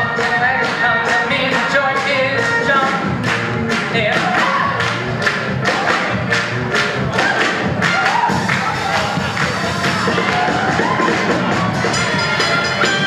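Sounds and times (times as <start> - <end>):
singing over a band: 8.0 - 13.0.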